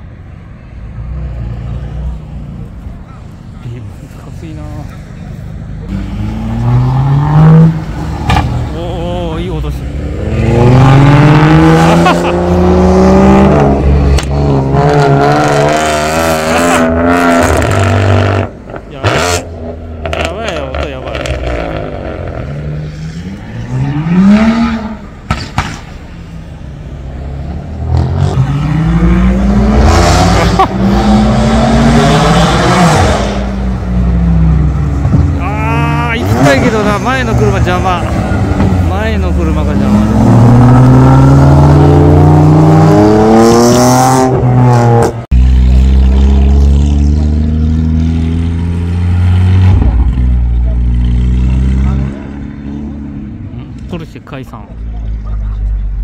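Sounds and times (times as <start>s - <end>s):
car engines revving and accelerating: 0.0s - 56.0s.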